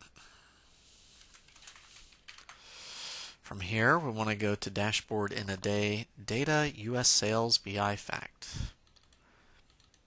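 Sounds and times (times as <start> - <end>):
keyboard typing: 1.2 - 2.6, 8.8 - 10.0.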